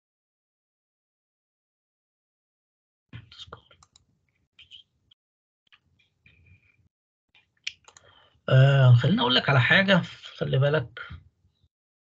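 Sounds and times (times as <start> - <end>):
mouse and keyboard clicking: 7.7 - 8.1.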